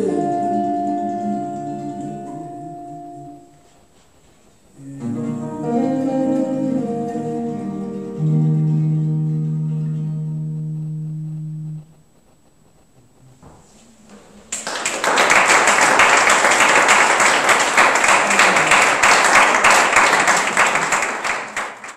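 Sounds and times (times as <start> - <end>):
audience applause: 14.1 - 21.9.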